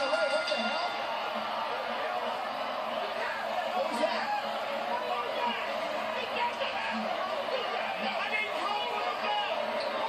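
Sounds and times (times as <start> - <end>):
arena crowd noise: 0.0 - 10.0
commentator's voice: 3.2 - 10.0.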